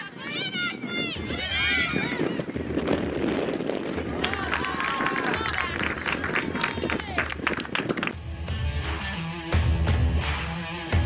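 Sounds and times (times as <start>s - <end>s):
outdoor field noise: 0.0s - 11.0s.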